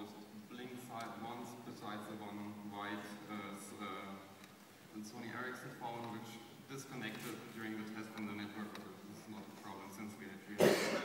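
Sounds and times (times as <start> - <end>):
person coughing: 10.6 - 11.0.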